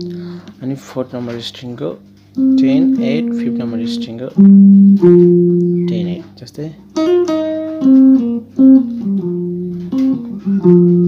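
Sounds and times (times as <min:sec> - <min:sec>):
electric guitar lead phrase: 0:00.0 - 0:00.5, 0:02.0 - 0:06.3, 0:06.9 - 0:11.0.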